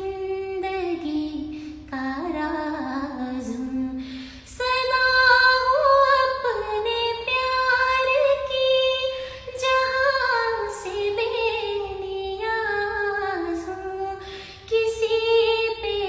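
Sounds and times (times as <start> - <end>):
short breath: 1.5 - 1.8, 4.0 - 4.5, 9.2 - 9.5, 14.2 - 14.7.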